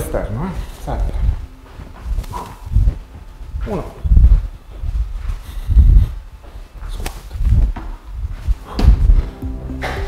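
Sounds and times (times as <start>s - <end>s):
dull low thuds: 1.1s - 6.5s, 7.3s - 10.0s.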